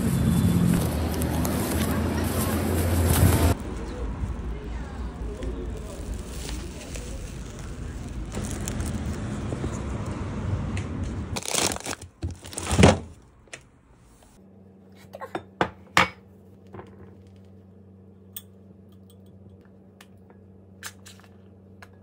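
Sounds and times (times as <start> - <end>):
foil bag rustling: 0.0 - 9.6, 11.4 - 13.1
traffic hum: 0.0 - 14.8.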